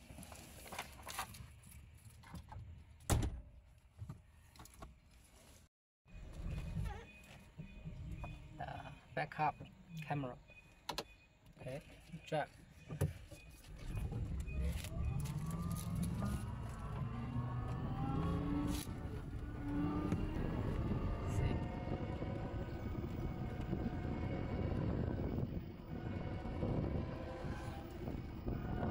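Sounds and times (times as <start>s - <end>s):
tyre and road rumble: 13.6s - 28.9s
electric drive whine: 13.7s - 28.9s.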